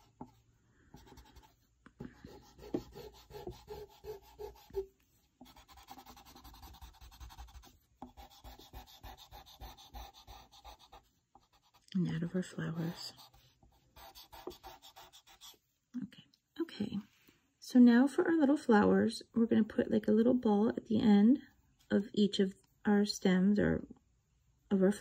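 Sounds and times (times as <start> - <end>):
eraser rubbing on paper: 1.0 - 15.6.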